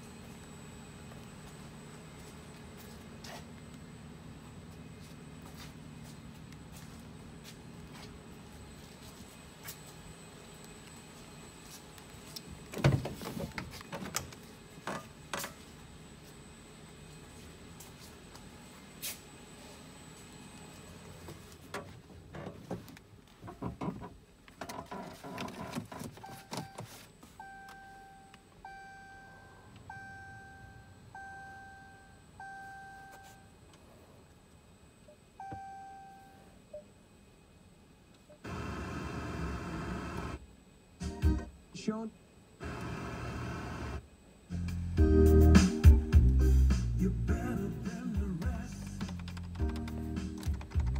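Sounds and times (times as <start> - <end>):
dashboard warning chime: 26.2 - 33.6, 35.4 - 36.8
music from car radio: 44.6 - 50.9.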